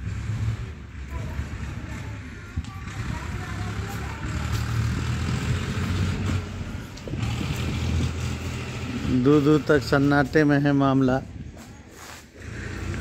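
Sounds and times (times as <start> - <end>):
vehicle engine running: 0.0 - 10.4
outdoor street noise: 0.0 - 13.0.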